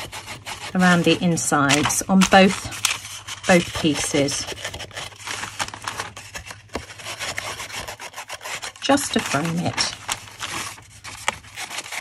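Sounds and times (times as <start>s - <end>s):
foam tool rubbing on card: 0.0s - 5.6s, 6.3s - 12.0s.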